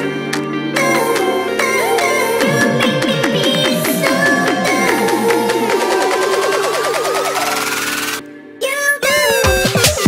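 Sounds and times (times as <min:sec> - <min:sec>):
rising synth sweep: 0:02.4 - 0:08.2.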